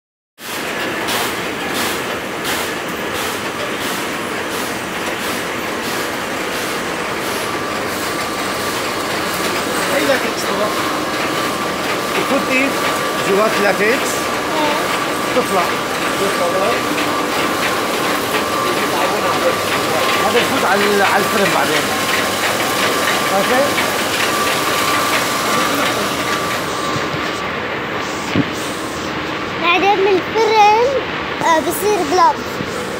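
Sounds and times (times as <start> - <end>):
machinery running: 0.4 - 32.9
person speaking: 12.2 - 17.0.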